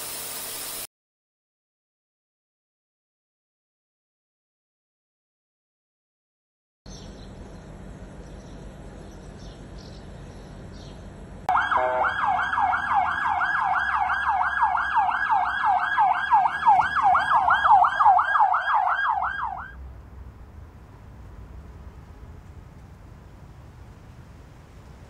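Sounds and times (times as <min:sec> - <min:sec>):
police siren yelping: 0:11.5 - 0:19.8.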